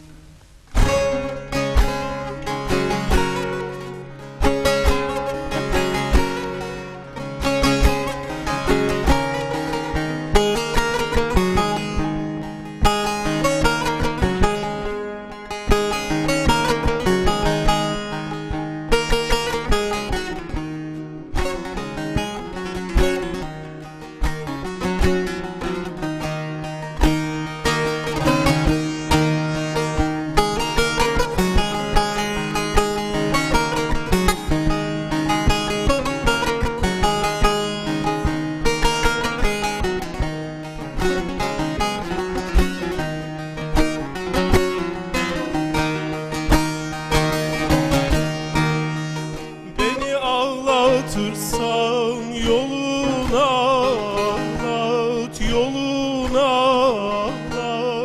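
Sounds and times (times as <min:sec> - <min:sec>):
acoustic guitar playing: 0:00.0 - 0:58.0
plucked long-necked lute: 0:00.0 - 0:58.0.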